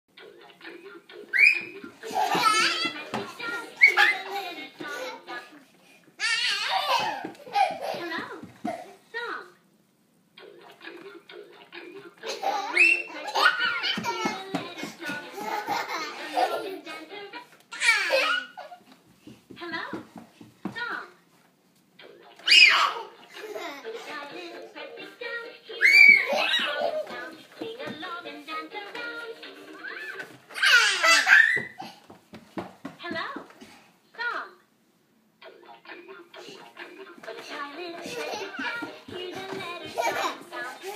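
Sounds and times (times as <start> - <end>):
toddlers squealing and babbling: 1.3 - 1.8, 12.5 - 13.8, 22.4 - 23.1, 25.8 - 27.0, 29.8 - 32.0
toddler laughing: 1.4 - 5.6, 6.2 - 9.0, 12.2 - 17.1, 17.7 - 18.8, 22.5 - 24.7, 25.8 - 27.3, 29.8 - 32.0, 38.0 - 40.9.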